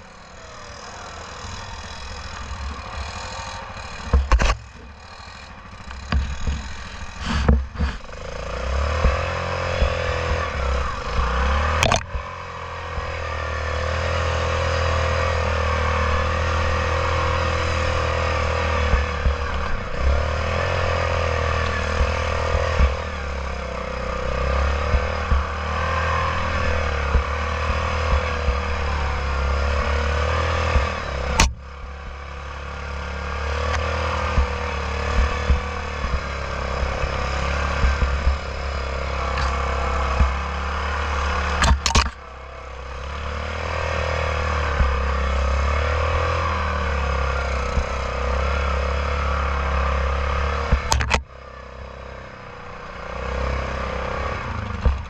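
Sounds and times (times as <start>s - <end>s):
sharp clicks: 0.0s - 12.4s, 17.2s - 32.3s, 33.4s - 42.3s, 50.6s - 51.4s
atv engine running: 0.0s - 55.0s
knocks and rattles over bumps: 0.0s - 55.0s.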